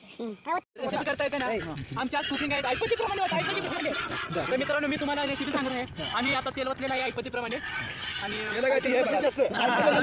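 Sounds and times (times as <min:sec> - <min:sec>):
men talking over one another: 0:00.8 - 0:10.0.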